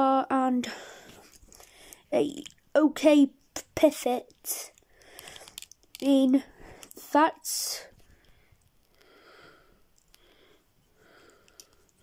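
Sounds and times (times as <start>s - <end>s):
faint breaths: 0.6s - 2.1s, 4.5s - 5.7s, 6.4s - 12.0s
plastic toy handling clicks: 4.3s - 6.1s.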